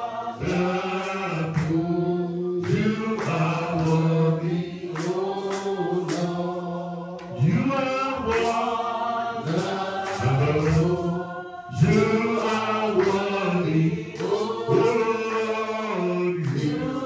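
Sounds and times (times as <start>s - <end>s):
man singing a chant into a microphone: 0.0s - 17.0s.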